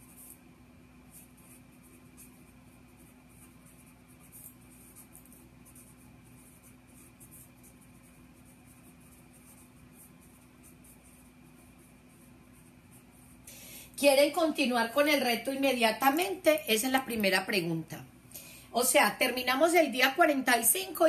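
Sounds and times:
pen scratching on paper: 0.0 - 0.4, 1.0 - 13.4
steady low hum: 0.0 - 21.0.

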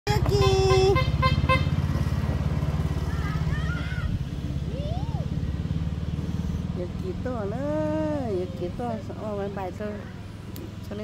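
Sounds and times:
engine running: 0.1 - 11.0
vehicle horn honking: 0.3 - 1.9.

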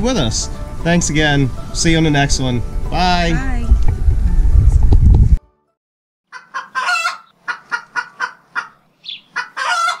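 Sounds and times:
chicken clucking: 6.3 - 10.0
chicken squawks: 6.3 - 10.0.

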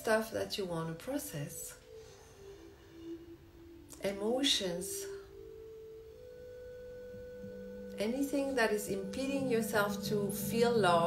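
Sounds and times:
meditation drone music: 0.0 - 11.0.

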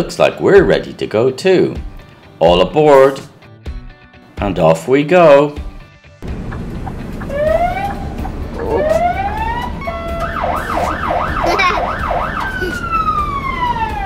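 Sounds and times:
diesel engine running: 6.2 - 10.8
fire truck siren wailing: 6.3 - 14.0.

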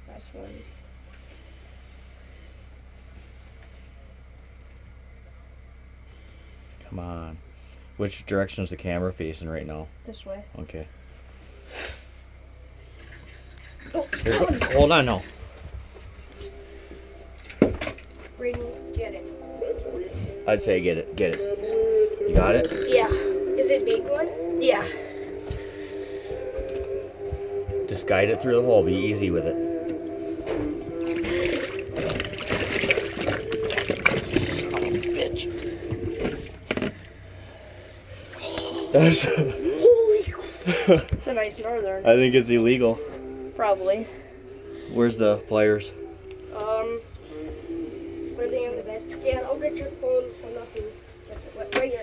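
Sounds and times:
faint low hum: 0.0 - 52.0
steady background noise: 0.0 - 52.0
person sniffing: 11.6 - 12.1
person speaking: 33.4 - 35.8.

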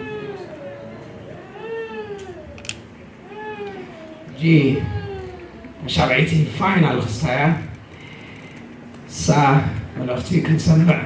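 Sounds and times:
baby crying: 0.0 - 2.6, 3.2 - 5.8.

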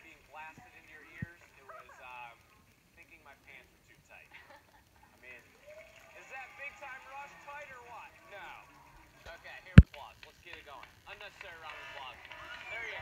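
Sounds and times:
faint voices from laptop speakers: 0.0 - 13.0.

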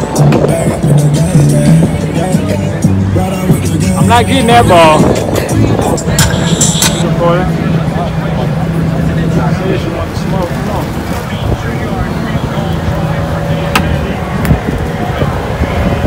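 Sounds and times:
background voices: 0.0 - 15.8.

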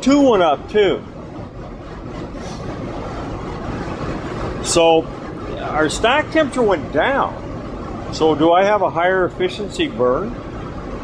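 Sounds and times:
oil burner rushing drone: 0.0 - 11.0.

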